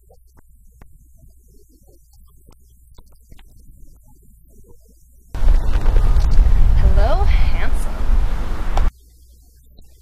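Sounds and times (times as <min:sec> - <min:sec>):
faint low hum: 0:00.0 - 0:10.0
wind buffeting microphone: 0:05.4 - 0:08.9.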